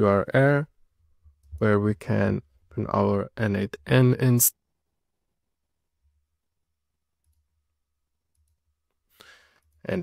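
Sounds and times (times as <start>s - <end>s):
man speaking: 0.0s - 0.7s, 1.5s - 4.6s.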